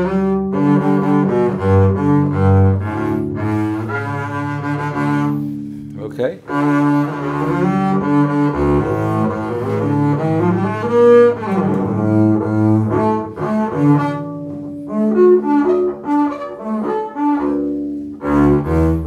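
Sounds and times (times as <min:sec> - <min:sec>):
bowed double bass: 0:00.0 - 0:19.0.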